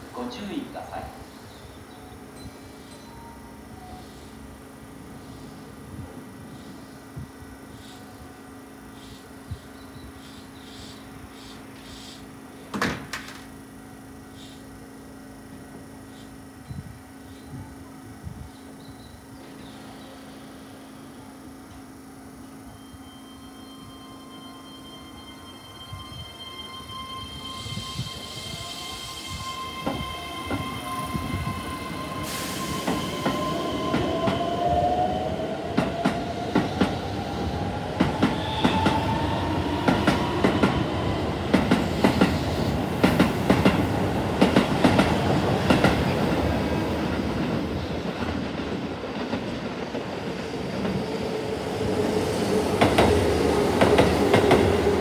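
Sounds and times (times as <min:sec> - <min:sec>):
electric train motor whine: 0:01.1 - 0:48.9
train passing close by: 0:13.6 - 0:55.0.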